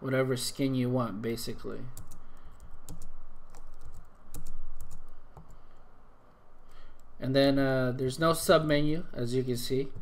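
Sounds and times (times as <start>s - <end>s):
keyboard keys clicking: 2.0s - 5.6s.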